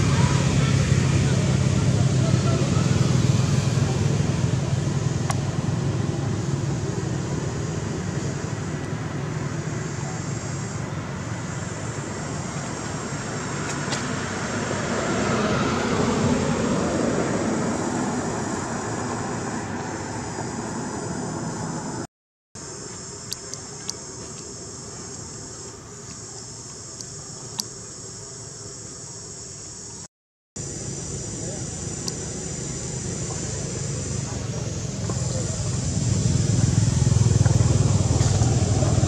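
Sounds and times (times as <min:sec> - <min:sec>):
vehicle passing by: 0:00.0 - 0:22.1, 0:30.7 - 0:39.0.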